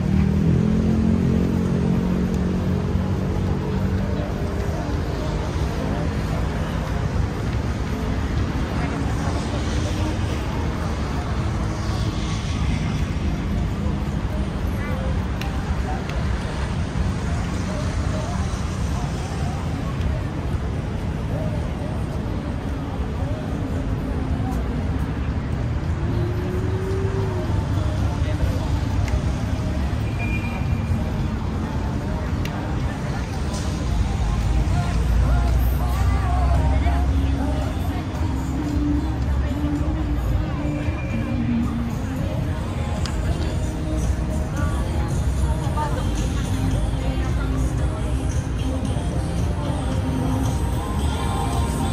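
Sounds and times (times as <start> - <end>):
faint voices: 0.0 - 51.9
people chatting: 0.0 - 51.9
road traffic rumble: 0.0 - 51.9.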